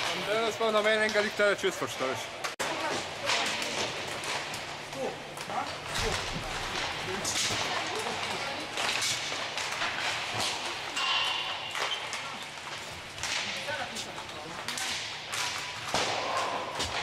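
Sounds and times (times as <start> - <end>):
skate wheels rolling on floor: 0.0 - 11.0, 11.6 - 17.0
hockey sticks striking pucks: 0.0 - 17.0
pucks hitting boards: 2.4 - 17.0.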